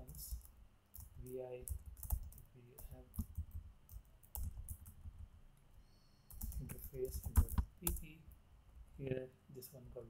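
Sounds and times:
keyboard keystrokes: 6.3s - 8.0s.

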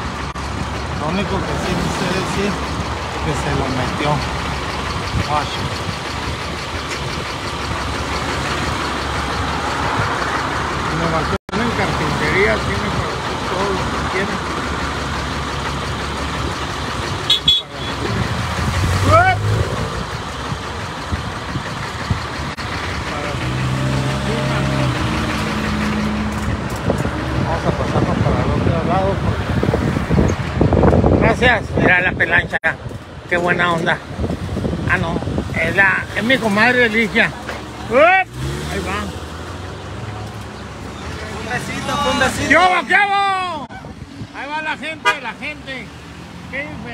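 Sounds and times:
cars passing: 0.0s - 46.9s
vehicle engines running: 0.0s - 46.9s.

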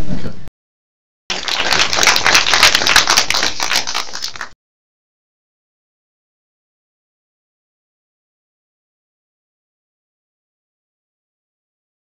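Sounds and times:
audience applauding: 1.3s - 4.6s.

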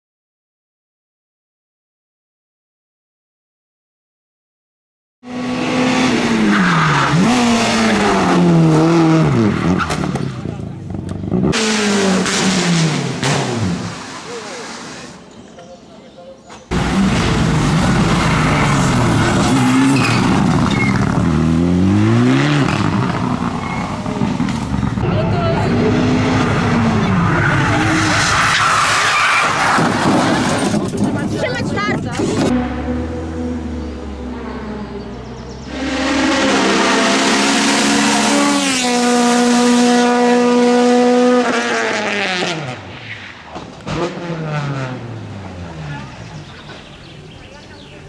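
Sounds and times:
rally car engines revving: 5.2s - 15.5s, 16.6s - 48.0s
tyre squeal: 18.7s - 21.2s, 23.6s - 24.1s.

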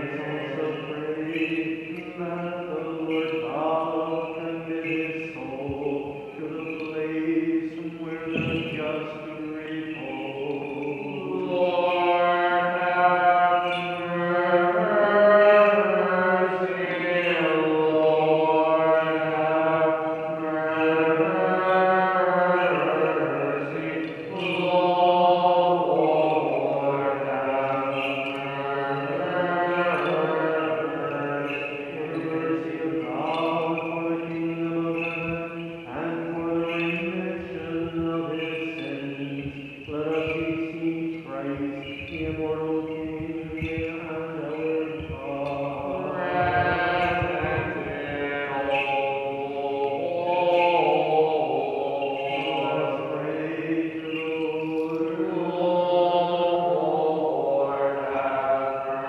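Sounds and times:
man chanting unaccompanied: 0.0s - 59.0s.

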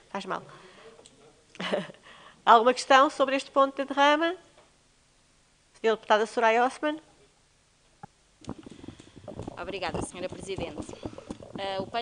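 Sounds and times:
microphone handling thumps and rustle: 8.0s - 12.0s.

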